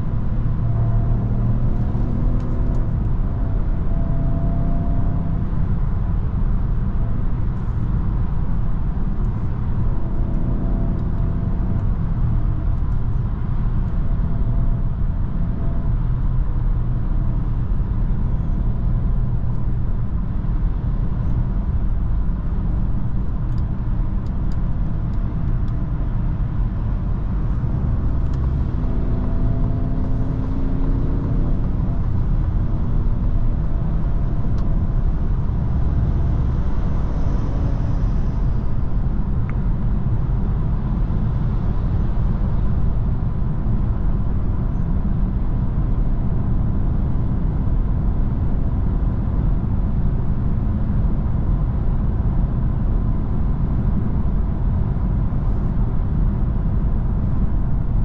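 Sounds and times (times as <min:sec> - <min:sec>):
car engine hum: 0:00.0 - 0:58.0.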